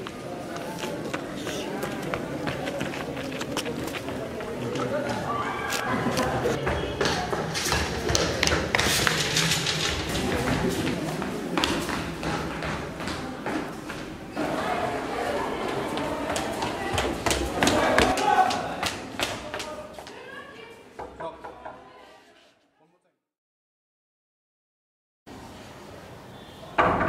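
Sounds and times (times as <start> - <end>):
footsteps running on hard floor: 6.6 - 14.2, 15.7 - 20.2.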